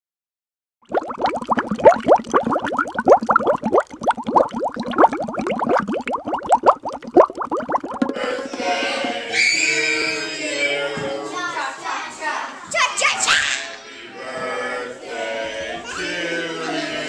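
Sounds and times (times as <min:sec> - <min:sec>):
underwater bubbles gurgling: 0:00.8 - 0:09.3.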